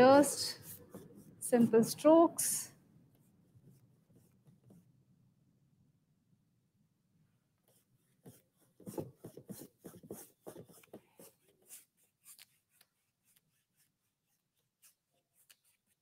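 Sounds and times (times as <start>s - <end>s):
paintbrush rubbing on canvas: 0.0s - 1.8s, 7.7s - 16.0s.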